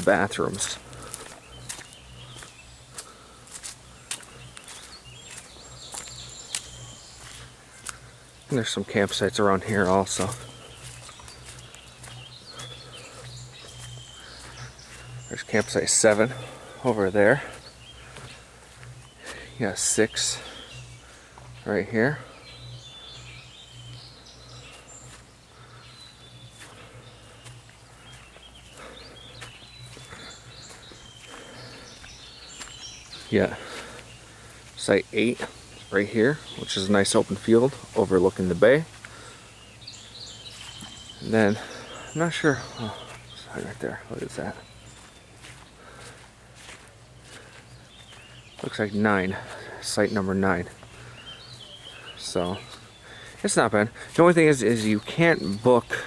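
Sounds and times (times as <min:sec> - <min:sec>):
faint bird chirps: 0:00.0 - 0:56.0
footsteps on dirt trail: 0:00.0 - 0:56.0
steady low hum: 0:00.0 - 0:56.0.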